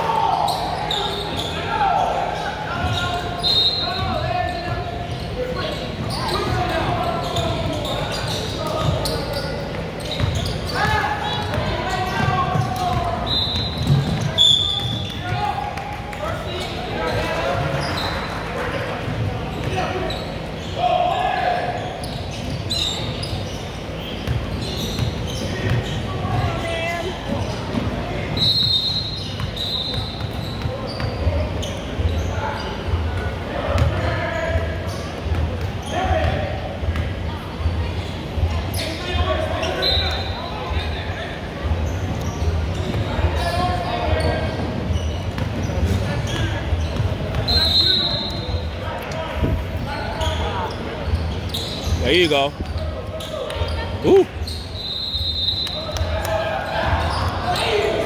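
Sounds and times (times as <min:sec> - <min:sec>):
shouts and chatter in a hall: 0:00.0 - 0:58.0
short high squeaks: 0:49.9 - 0:55.8.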